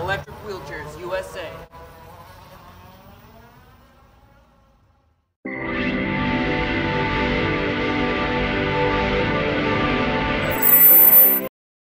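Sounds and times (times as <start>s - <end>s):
mobility scooter motor whining: 0.3s - 5.1s.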